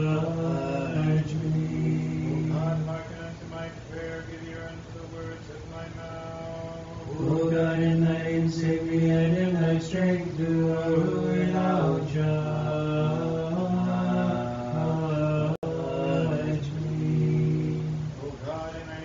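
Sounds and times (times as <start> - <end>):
voices chanting: 0.0 - 19.0.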